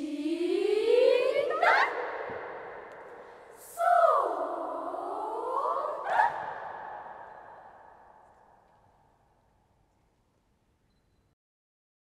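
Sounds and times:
choir shout-like attack: 0.0s - 2.9s, 3.6s - 7.9s
children's choir singing: 0.0s - 7.9s.

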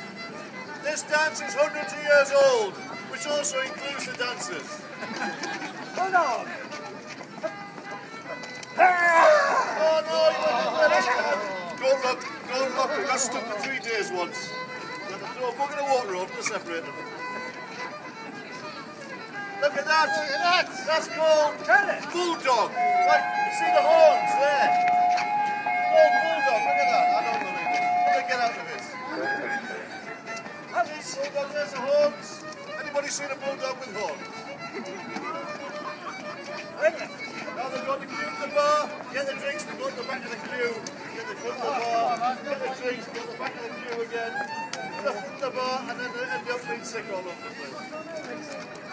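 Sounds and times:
fiddle playing dance tune: 0.0s - 48.9s
shoes tapping on stone paving: 3.2s - 9.4s, 30.0s - 39.2s, 39.9s - 48.9s
voices: 18.0s - 32.4s.

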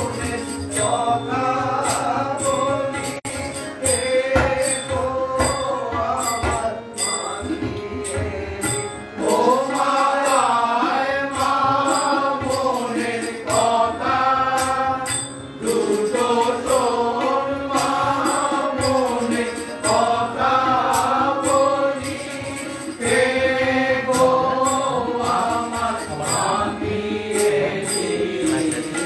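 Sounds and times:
devotional singing: 0.0s - 29.0s
metallic percussion strikes: 0.0s - 29.0s
tabla: 0.0s - 29.0s.

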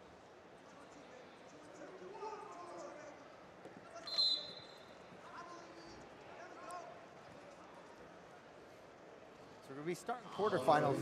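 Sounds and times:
murmur of crowd: 0.0s - 11.0s
referee's whistle blast: 4.0s - 4.8s.

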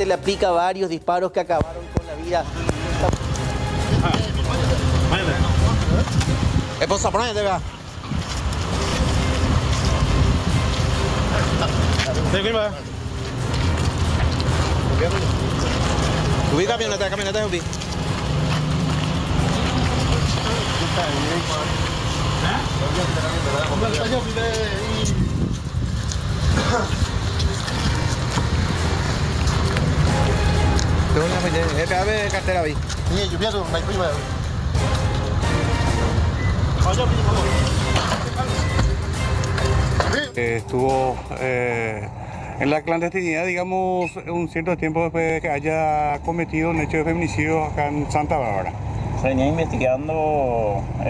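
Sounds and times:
steady low rumble: 2.5s - 37.9s
wind rumble on microphone: 3.8s - 11.2s, 24.4s - 30.5s.

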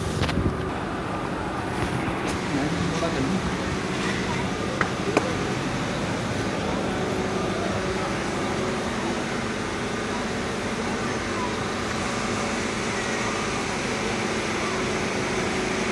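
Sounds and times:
indistinct voices: 0.6s - 15.9s.

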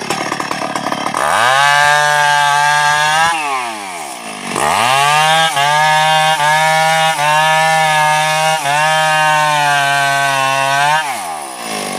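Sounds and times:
chainsaw cutting log: 0.0s - 11.9s.

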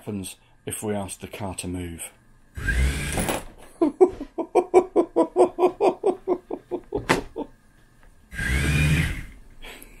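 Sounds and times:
small motor whirring: 2.5s - 3.4s, 8.3s - 9.4s
rapid even motor pulsing: 2.6s - 3.3s, 8.3s - 9.4s.

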